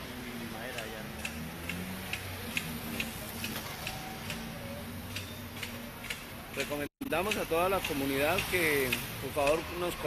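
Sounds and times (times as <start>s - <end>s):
regular ticking: 0.0s - 10.0s.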